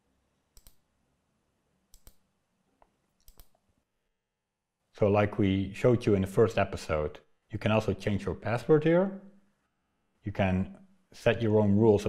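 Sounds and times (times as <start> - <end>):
computer mouse clicks: 0.5 - 0.9, 1.9 - 3.6.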